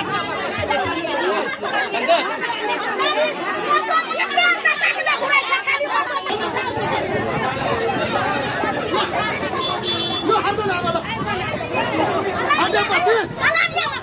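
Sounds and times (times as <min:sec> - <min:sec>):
crowd talking and shouting: 0:00.0 - 0:14.0.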